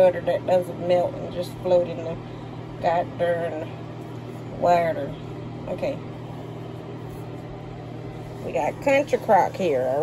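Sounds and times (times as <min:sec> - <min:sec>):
steady low mechanical hum: 0:00.0 - 0:10.0.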